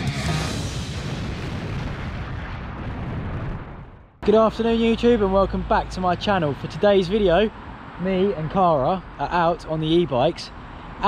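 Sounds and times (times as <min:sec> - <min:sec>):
explosion-like rumble: 0:00.2 - 0:04.4.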